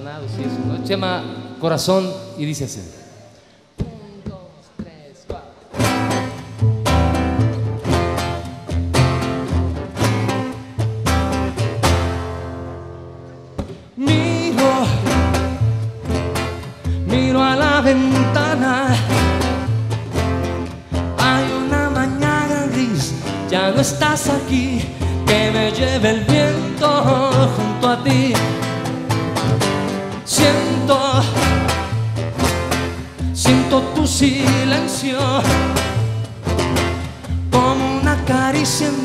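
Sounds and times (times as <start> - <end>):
strummed acoustic guitar: 5.6 - 39.0.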